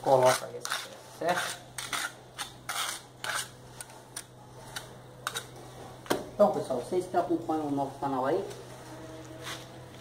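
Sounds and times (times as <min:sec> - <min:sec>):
trowel scraping mortar: 0:00.0 - 0:05.8.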